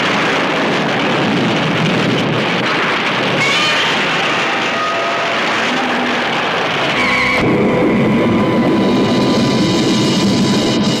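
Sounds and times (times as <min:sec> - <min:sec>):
dense sound effects: 0:04.1 - 0:11.0
trailer music: 0:06.9 - 0:11.0.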